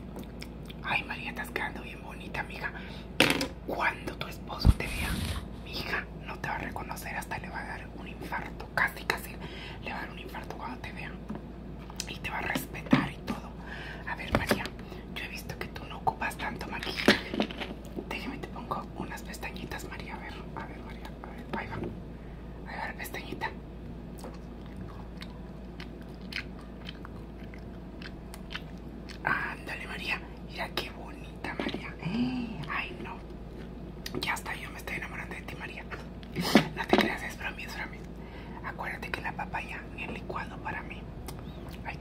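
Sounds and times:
person whispering: 0:00.8 - 0:02.8, 0:03.7 - 0:11.2, 0:12.0 - 0:17.1, 0:18.1 - 0:21.9, 0:22.7 - 0:23.6, 0:29.2 - 0:33.2, 0:34.2 - 0:36.0, 0:36.7 - 0:41.1
wet mouth clicks and smacks: 0:24.2 - 0:29.2.

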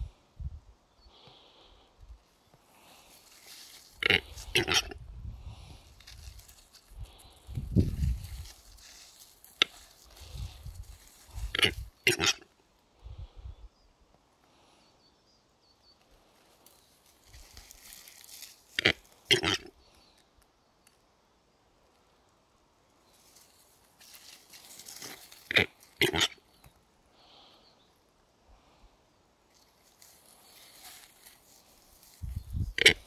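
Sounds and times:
capercaillie hissing scraping calls: 0:02.8 - 0:05.0, 0:08.1 - 0:12.5, 0:17.2 - 0:19.8, 0:24.0 - 0:26.5
capercaillie calling: 0:03.5 - 0:05.0, 0:30.4 - 0:33.0.

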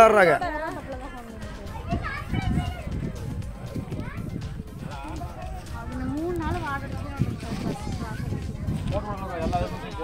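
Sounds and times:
distant children's voices: 0:01.3 - 0:09.0.

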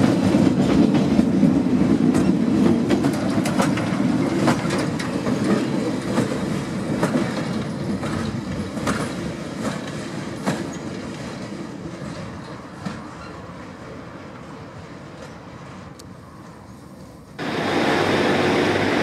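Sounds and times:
wheels clicking over rail joints: 0:00.0 - 0:13.5
train rumble: 0:00.0 - 0:19.0.

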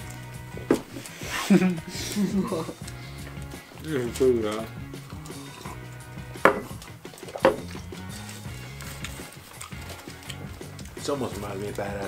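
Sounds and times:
music with steady bass line: 0:00.0 - 0:12.0
sharp knocks: 0:06.4 - 0:06.7, 0:07.3 - 0:07.7.

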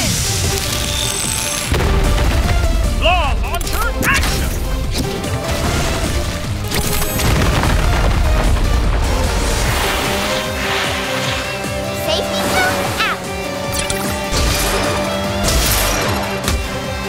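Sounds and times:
rushing and booming effects: 0:00.0 - 0:16.8
cartoon background music: 0:00.0 - 0:17.0.

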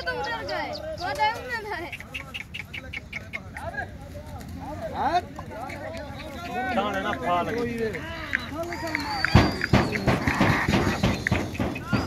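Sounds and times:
pigeon wings clattering: 0:03.8 - 0:12.0.

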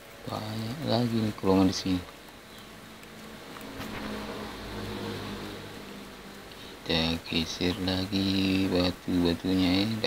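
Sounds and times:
engine running: 0:03.5 - 0:06.2.

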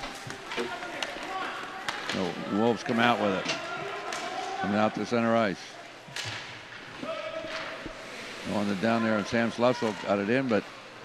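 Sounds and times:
sharp knocks of hockey play: 0:00.0 - 0:02.6, 0:06.1 - 0:08.0
arena crowd hubbub: 0:00.0 - 0:11.0.

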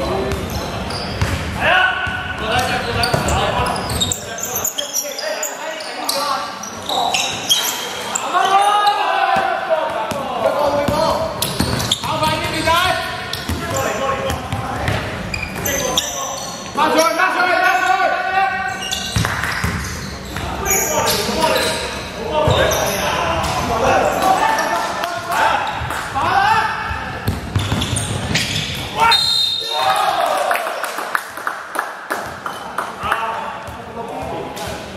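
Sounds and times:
basketball bouncing on wooden court: 0:01.2 - 0:03.4, 0:10.1 - 0:12.7, 0:13.3 - 0:15.7, 0:19.1 - 0:20.5, 0:27.2 - 0:28.6.

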